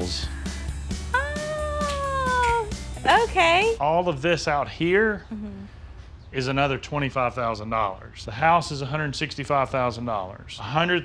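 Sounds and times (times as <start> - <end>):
background music: 0.0 - 4.0
high voice singing ooh: 1.1 - 2.7.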